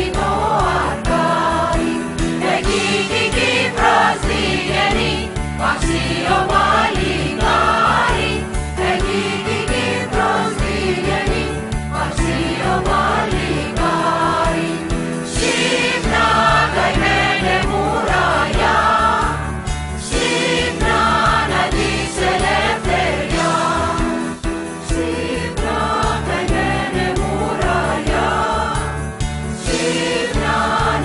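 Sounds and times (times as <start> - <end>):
voices singing: 0.0 - 29.0, 29.6 - 31.0.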